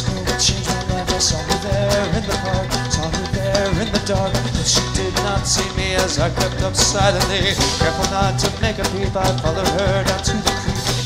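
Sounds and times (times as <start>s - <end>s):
live band playing: 0.0s - 11.0s
sliding lead melody: 0.0s - 11.0s.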